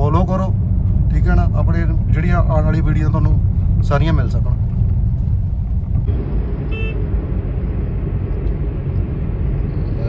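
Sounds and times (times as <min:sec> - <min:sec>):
car driving on highway: 0:00.0 - 0:10.0.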